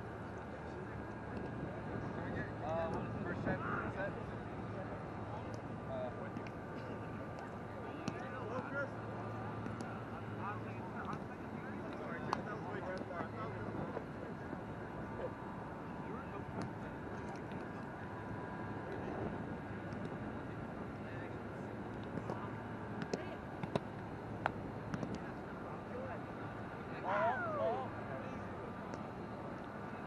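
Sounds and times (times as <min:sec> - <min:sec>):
distant voices: 0:00.0 - 0:30.0
steady low hum: 0:00.0 - 0:30.0.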